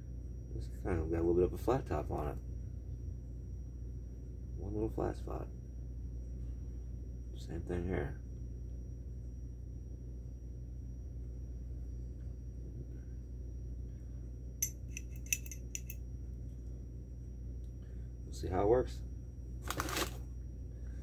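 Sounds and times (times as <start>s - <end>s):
steady low hum: 0.0s - 21.0s
light metallic clicks and clinks: 14.6s - 16.0s.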